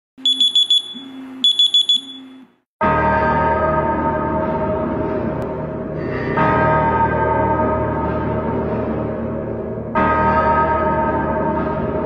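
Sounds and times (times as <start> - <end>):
electronic alarm beeping: 0.2 - 2.6
deep gong-like hit: 2.8 - 12.0.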